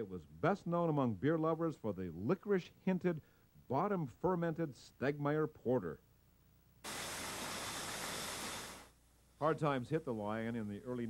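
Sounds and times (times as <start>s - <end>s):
machinery rushing hiss: 6.8s - 9.6s.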